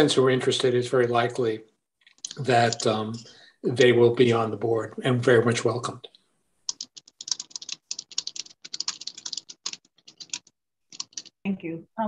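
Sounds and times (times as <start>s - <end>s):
rapid typing on keyboard: 2.1s - 3.2s, 6.7s - 11.4s.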